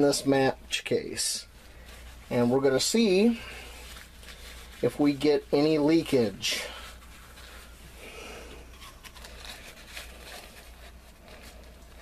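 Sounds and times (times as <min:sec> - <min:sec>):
low steady hum: 0:00.0 - 0:12.0
paper napkin rustling: 0:00.0 - 0:12.0.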